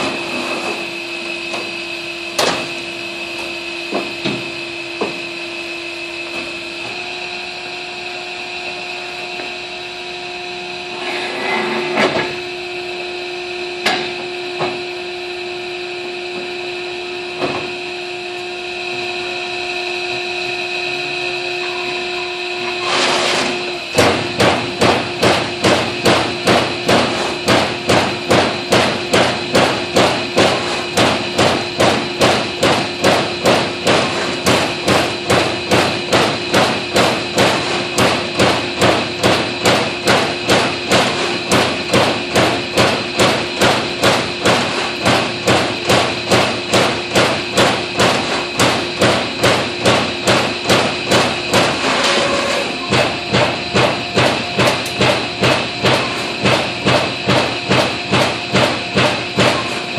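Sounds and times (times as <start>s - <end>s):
machine hum: 0.0s - 59.9s
knocks of sheet in clamps: 2.4s - 2.8s, 22.9s - 59.9s
punch striking metal sheet: 23.1s - 59.9s.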